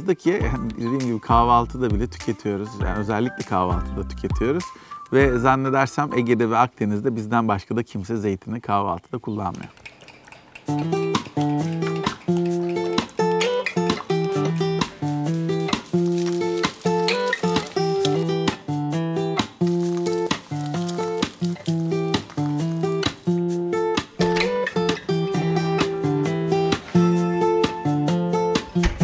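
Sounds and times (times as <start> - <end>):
acoustic guitar strumming: 10.7 - 29.0.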